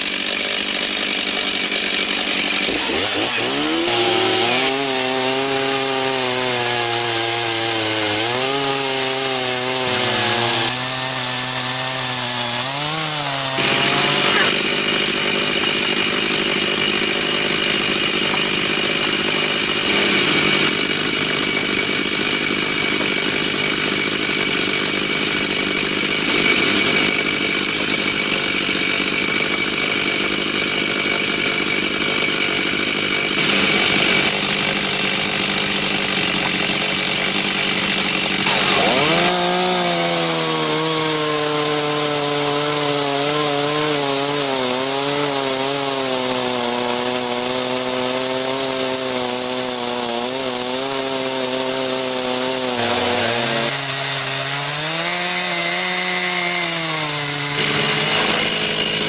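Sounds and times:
chainsaw cutting through log: 0:00.0 - 0:59.0.

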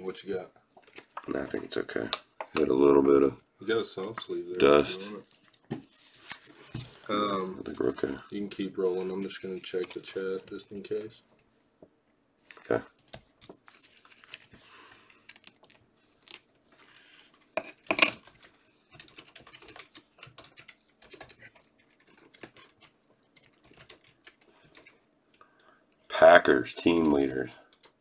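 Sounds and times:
trading cards rustling and clicking: 0:05.1 - 0:11.3.

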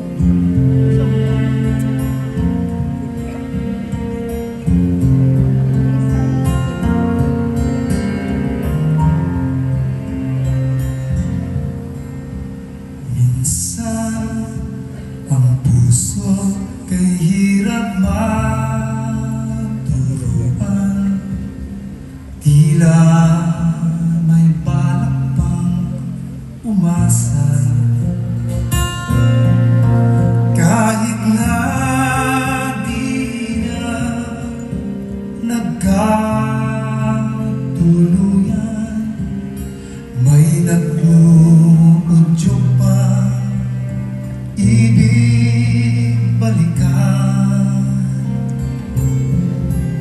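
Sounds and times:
strummed acoustic guitar: 0:00.0 - 0:50.0
man singing: 0:13.0 - 0:21.7, 0:22.4 - 0:28.4, 0:30.2 - 0:50.0.

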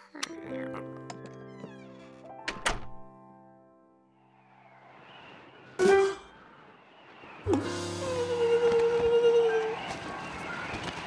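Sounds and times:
soft music with held notes: 0:00.2 - 0:03.7.

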